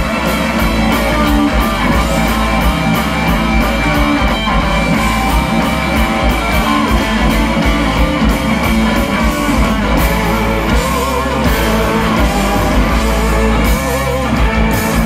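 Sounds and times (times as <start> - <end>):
drum kit with cymbals: 0.0 - 15.0
electric guitars through amplifiers: 0.0 - 15.0.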